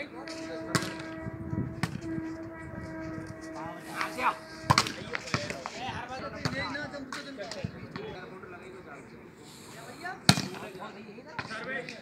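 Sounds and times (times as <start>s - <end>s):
steady hum: 0.0s - 7.0s.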